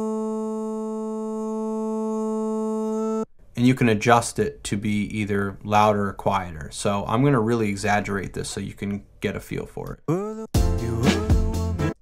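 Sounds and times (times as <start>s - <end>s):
steady synthetic vocal tone: 10.1s - 12.0s.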